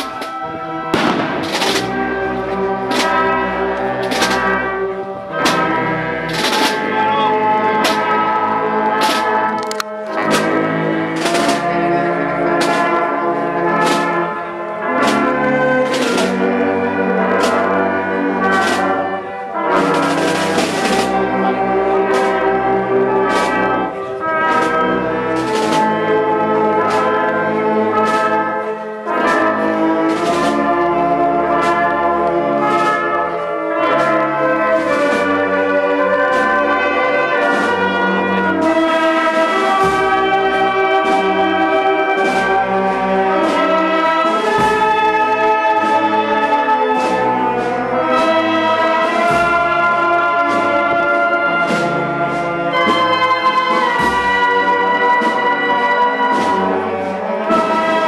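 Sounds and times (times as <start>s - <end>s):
cymbal crash: 0.0s - 7.0s
marching band playing: 0.0s - 58.0s.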